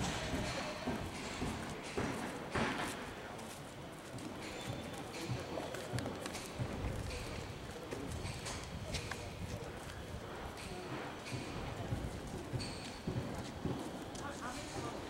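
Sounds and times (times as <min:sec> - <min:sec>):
faint indistinct voices: 0:00.0 - 0:15.0
footsteps on paving stones: 0:00.0 - 0:15.0.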